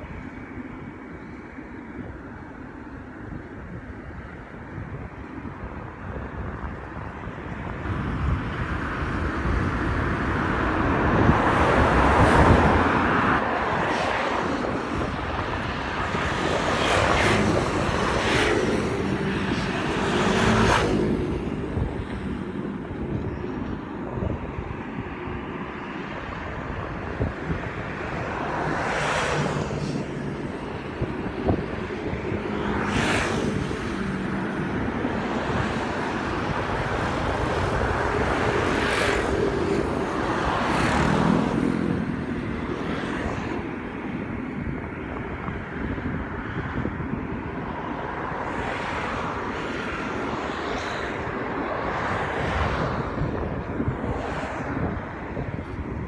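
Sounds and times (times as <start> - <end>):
vehicles passing: 0.0 - 56.0
wind and road noise: 0.0 - 56.0.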